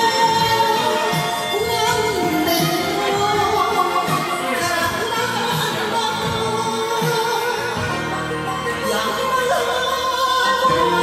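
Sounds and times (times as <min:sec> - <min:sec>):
karaoke backing track: 0:00.0 - 0:11.0
woman singing into a microphone: 0:00.0 - 0:11.0.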